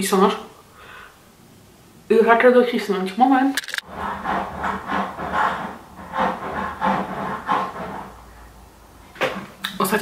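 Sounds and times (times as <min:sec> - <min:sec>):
saw cutting: 0:03.8 - 0:08.0.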